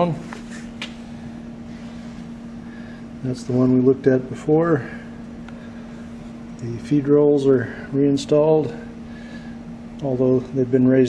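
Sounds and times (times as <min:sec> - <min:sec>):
droning hum: 0:00.0 - 0:11.0.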